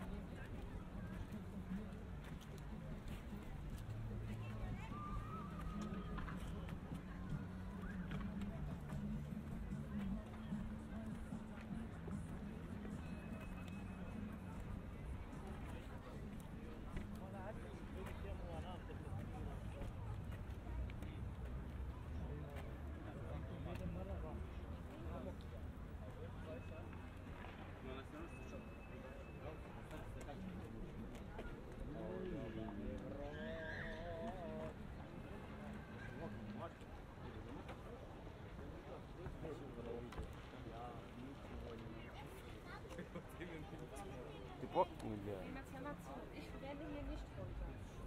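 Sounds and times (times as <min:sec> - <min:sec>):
footsteps on paved path: 0:00.0 - 0:28.2, 0:29.5 - 0:48.0
people chattering: 0:00.0 - 0:48.0.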